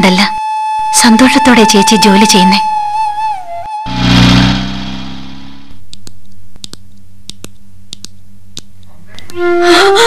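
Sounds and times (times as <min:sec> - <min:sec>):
car driving past: 0:03.8 - 0:05.8.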